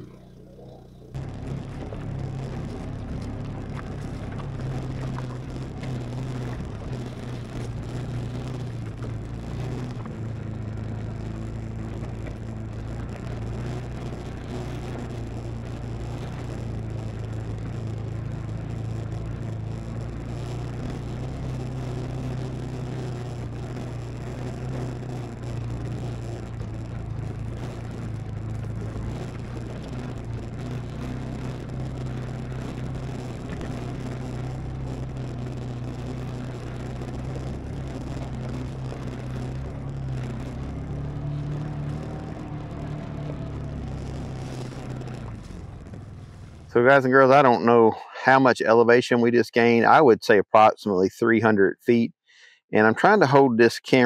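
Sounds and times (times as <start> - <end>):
utility vehicle engine under load: 0.0 - 47.7.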